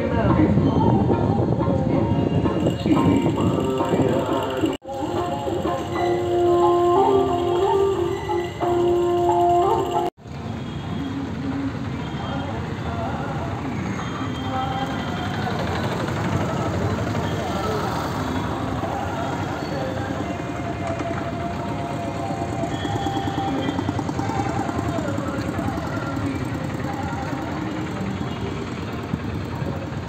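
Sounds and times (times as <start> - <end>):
indistinct voices: 0.0 - 10.1, 11.1 - 30.0
traffic and vehicle engines: 0.0 - 30.0.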